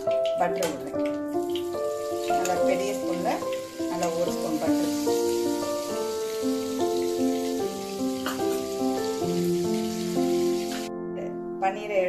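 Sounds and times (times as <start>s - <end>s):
food sizzling in hot oil: 0.0s - 10.9s
melodic background music: 0.0s - 12.0s.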